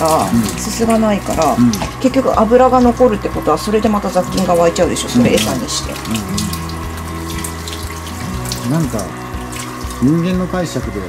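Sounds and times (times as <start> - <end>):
shower water spraying on dog: 0.0 - 11.0.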